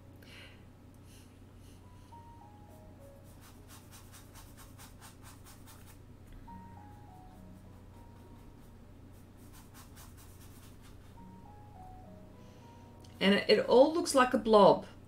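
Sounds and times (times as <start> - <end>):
quiet background tune: 0.0 - 15.0
brush scratching on paper: 3.1 - 6.0, 6.8 - 11.4.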